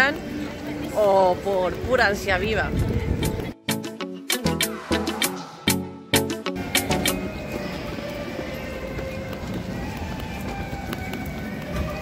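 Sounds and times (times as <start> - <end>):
voices of passers-by: 0.0 - 3.7, 4.5 - 12.0
footsteps on pavement: 6.6 - 12.0.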